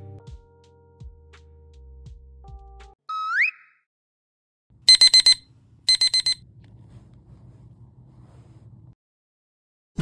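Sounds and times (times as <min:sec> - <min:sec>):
alarm clock beeping: 0:04.9 - 0:06.4.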